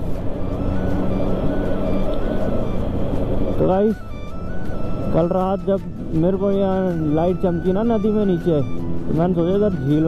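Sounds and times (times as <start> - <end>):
background music: 0.0 - 10.0
motorcycle cruising: 0.0 - 10.0
road and wind noise: 0.0 - 10.0.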